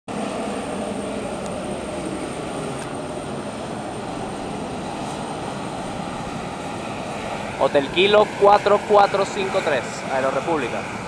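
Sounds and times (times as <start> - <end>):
aircraft turbine engines: 0.1 - 11.0.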